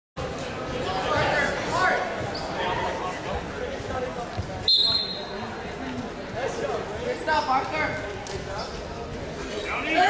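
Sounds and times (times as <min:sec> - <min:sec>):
voices echoing in a gym: 0:00.2 - 0:10.0
referee's whistle blast: 0:04.7 - 0:05.3.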